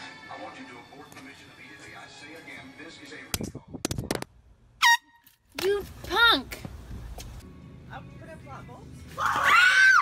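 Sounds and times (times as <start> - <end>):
shrill yelps: 9.2 - 10.0.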